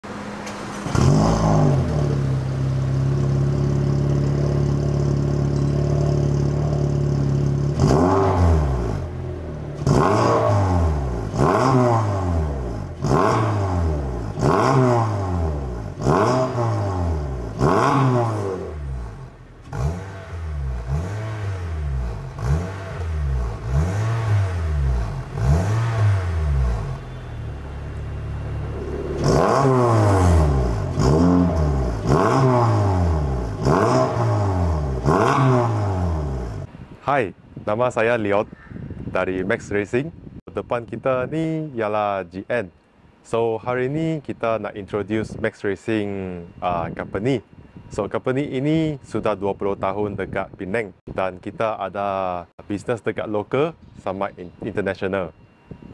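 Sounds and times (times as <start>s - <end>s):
car engine idling: 0.0s - 7.8s, 18.6s - 33.8s
engine throttle blips: 0.0s - 36.7s.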